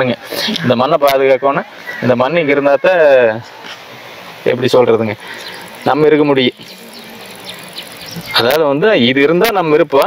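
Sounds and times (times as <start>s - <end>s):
man speaking: 4.4s - 5.2s, 5.8s - 6.7s, 8.3s - 10.0s
faint insect buzz: 5.2s - 8.5s.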